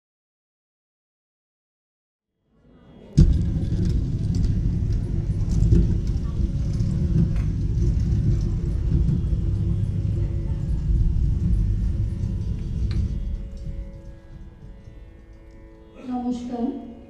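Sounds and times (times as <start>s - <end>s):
low noisy rumble: 2.8s - 17.0s
faint steady tones: 3.1s - 17.0s.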